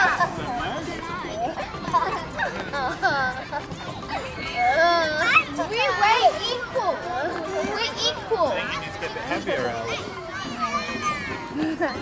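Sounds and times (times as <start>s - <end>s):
young children's voices: 0.0s - 12.0s.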